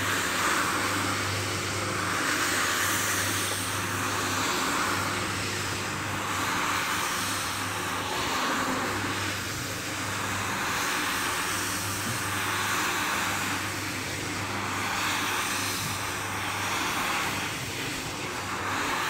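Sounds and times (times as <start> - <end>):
floor scrubber motor hum: 0.0 - 19.0.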